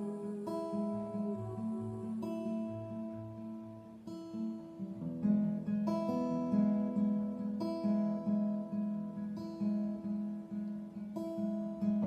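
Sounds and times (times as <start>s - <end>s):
acoustic guitar strumming chords: 0.0s - 12.0s.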